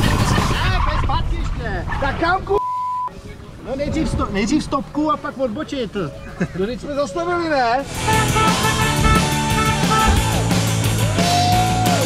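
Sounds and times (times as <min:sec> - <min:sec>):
high censor beep: 0:02.6 - 0:03.1
background music: 0:07.6 - 0:12.0.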